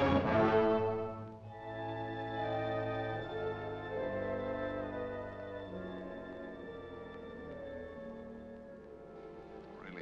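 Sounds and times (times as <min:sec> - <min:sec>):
orchestral held chords: 0:00.0 - 0:10.0
soft sustained orchestral notes: 0:00.0 - 0:10.0.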